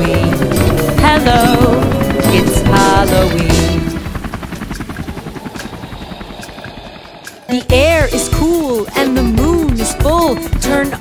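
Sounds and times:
music: 0.0 - 5.4, 6.2 - 11.0
helicopter rotor chopping: 0.0 - 11.0.

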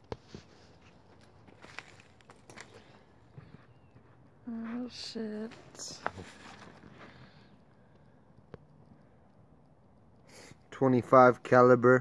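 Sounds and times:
shuffling footsteps on dirt: 0.1 - 7.3.

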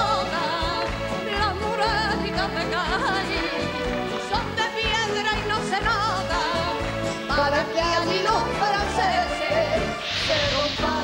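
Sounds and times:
live band accompaniment: 0.0 - 11.0
woman singing with vibrato: 0.0 - 11.0.

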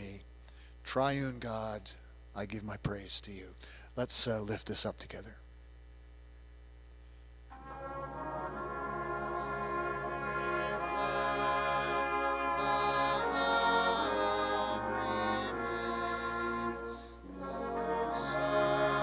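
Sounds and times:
brass band playing a hymn: 7.5 - 19.0.

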